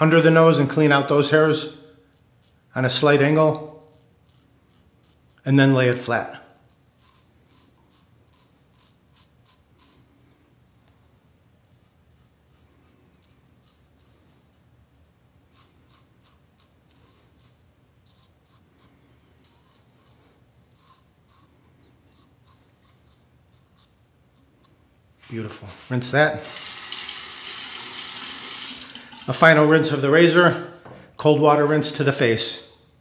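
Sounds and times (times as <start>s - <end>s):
razor scraping stubble: 2.1s - 10.3s, 11.5s - 28.7s.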